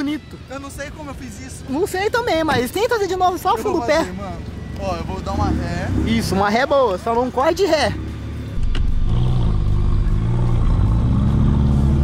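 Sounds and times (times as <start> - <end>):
car engine running at low revs: 8.1 - 12.0.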